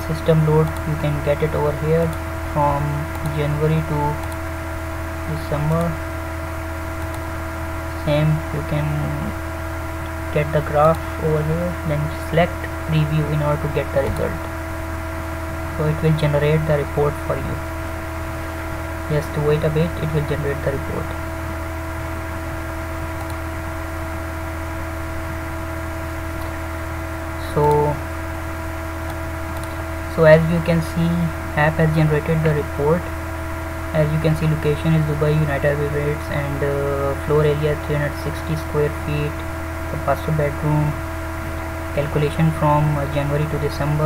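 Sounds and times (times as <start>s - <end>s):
electrical hum with hiss: 0.0s - 44.0s.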